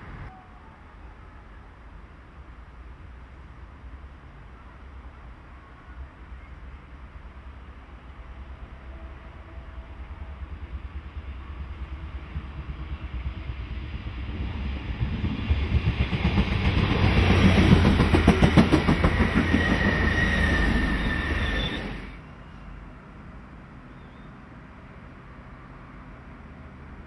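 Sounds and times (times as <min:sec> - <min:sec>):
train passing: 0:00.0 - 0:27.0
high wheel squeal: 0:19.0 - 0:22.7.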